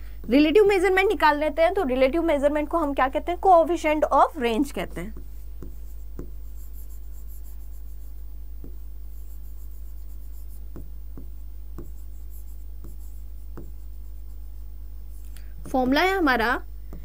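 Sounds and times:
steady low hum: 0:00.0 - 0:17.0
pen writing on board: 0:05.1 - 0:16.0.

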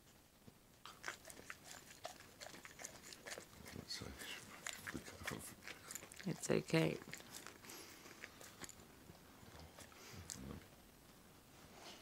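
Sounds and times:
dog licking and chewing: 0:00.8 - 0:10.8.

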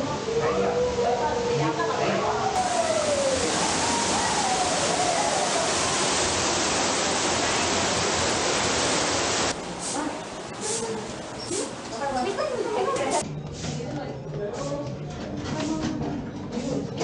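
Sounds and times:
faint voices: 0:00.0 - 0:06.1
rushing waterfall: 0:01.8 - 0:13.2.

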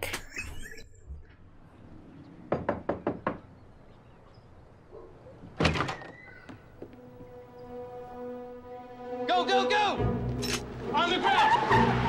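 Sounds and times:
held soundtrack music notes: 0:06.9 - 0:12.0.

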